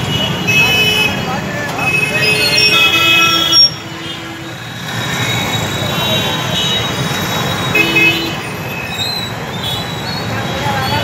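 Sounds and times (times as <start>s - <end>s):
vehicle horns honking: 0.0s - 4.6s, 5.7s - 8.8s
car and motorbike engines: 0.0s - 11.0s.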